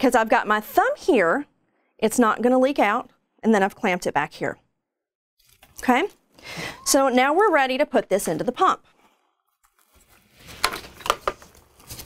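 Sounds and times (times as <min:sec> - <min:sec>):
plastic tubing clicks and rustles: 0:09.6 - 0:12.0.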